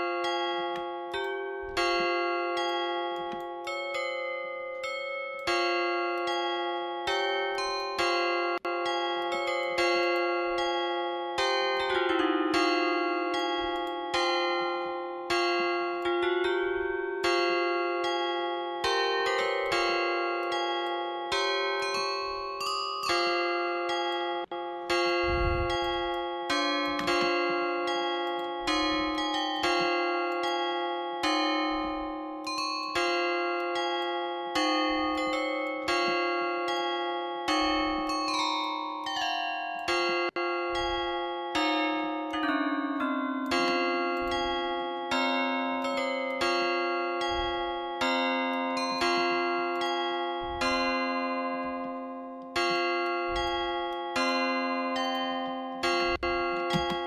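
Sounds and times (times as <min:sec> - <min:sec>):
bell-like synth chords: 0:00.0 - 0:57.0.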